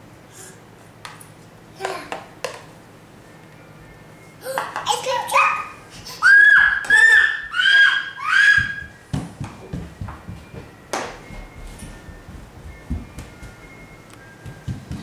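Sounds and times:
young child squealing: 5.4s - 8.9s.

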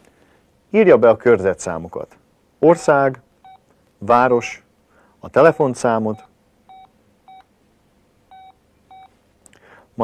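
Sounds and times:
phone keypad beeps: 5.5s - 7.5s, 8.3s - 9.2s.

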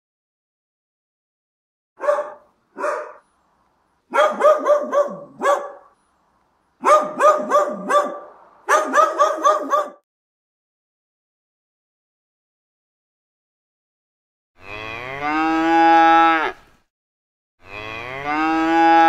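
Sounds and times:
dog barking: 2.0s - 3.2s, 4.1s - 6.0s, 6.8s - 10.1s.

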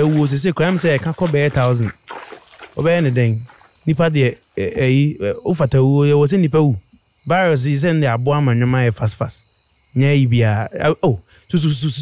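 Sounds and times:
man speaking: 0.0s - 2.0s, 2.8s - 9.4s, 10.0s - 12.0s.

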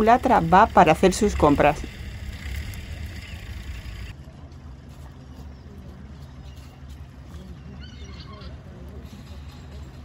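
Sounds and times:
ferry diesel engine drone: 0.0s - 7.6s.

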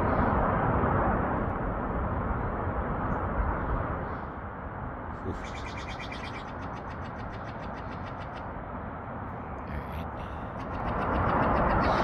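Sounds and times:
outdoor rumble and hiss: 0.0s - 12.0s.

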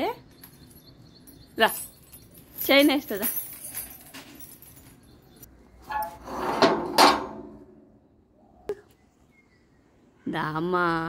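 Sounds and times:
metal jangling and clanking: 0.2s - 7.5s.

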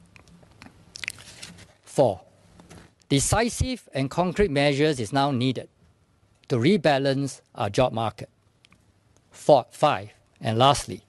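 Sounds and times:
paper rustling: 1.0s - 1.8s.

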